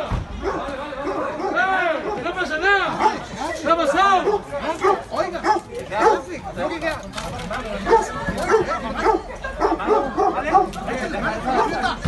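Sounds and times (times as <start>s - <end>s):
voices talking over one another: 0.0s - 12.0s.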